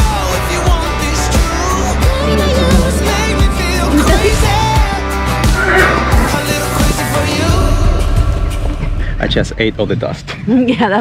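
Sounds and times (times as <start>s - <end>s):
background music with a beat: 0.0s - 9.1s
horse whinnying: 5.3s - 7.2s.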